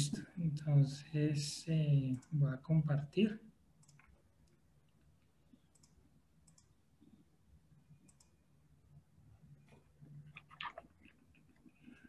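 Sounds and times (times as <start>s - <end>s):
computer mouse clicks: 3.8s - 4.6s, 5.5s - 7.2s, 8.0s - 8.4s.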